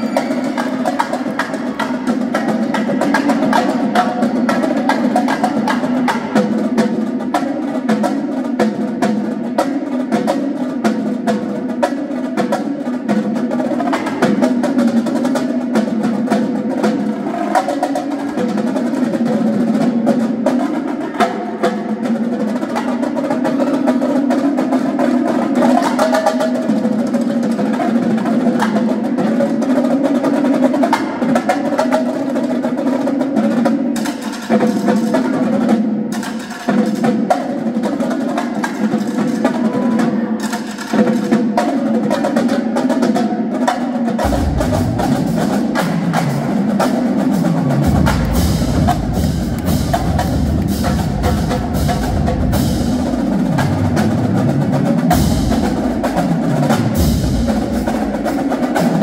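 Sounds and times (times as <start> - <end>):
marching drumline playing: 0.0 - 59.0.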